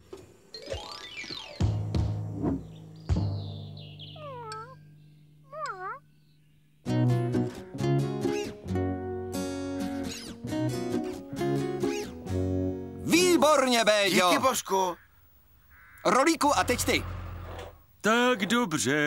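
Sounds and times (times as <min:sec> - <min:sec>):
cartoon cat meowing: 0:04.2 - 0:04.8, 0:05.5 - 0:06.0
person speaking: 0:05.5 - 0:06.0
light music with plucked notes: 0:06.8 - 0:13.3.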